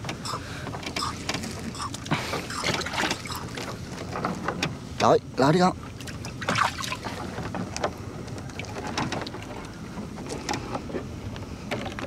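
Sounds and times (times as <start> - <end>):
knocks and clicks against hull: 0.0 - 5.1, 6.0 - 12.0
water splashing and dripping: 2.5 - 3.8, 6.0 - 7.2.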